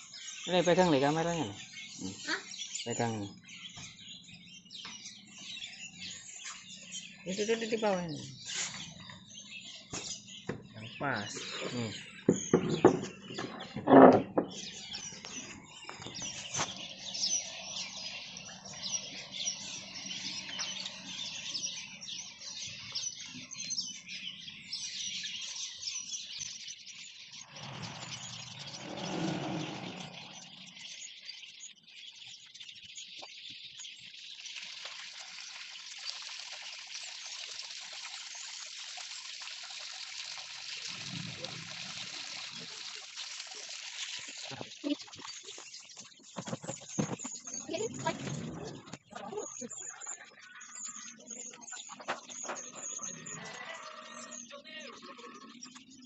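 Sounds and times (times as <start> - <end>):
water running into tub: 34.4 - 49.4.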